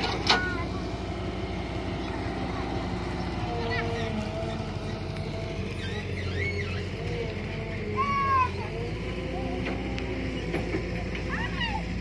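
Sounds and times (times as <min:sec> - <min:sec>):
children calling: 0:00.0 - 0:12.0
excavator engine droning: 0:00.0 - 0:12.0.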